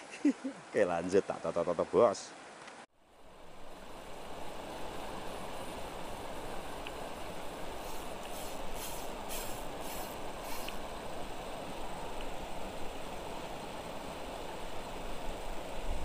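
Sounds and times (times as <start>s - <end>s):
brief high hisses: 7.8s - 10.8s.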